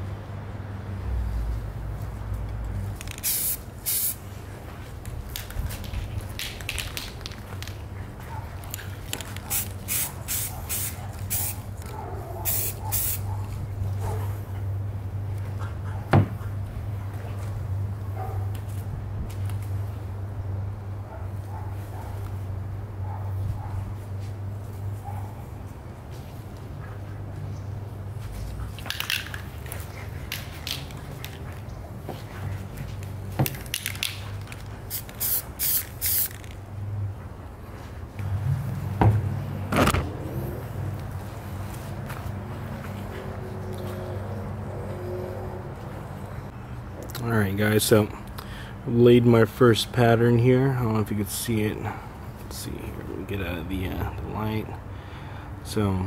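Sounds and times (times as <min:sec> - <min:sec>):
steady low hum: 0:00.0 - 0:56.0
aerosol spray can hissing: 0:03.2 - 0:04.2, 0:09.5 - 0:11.6, 0:12.5 - 0:13.2, 0:34.9 - 0:36.4.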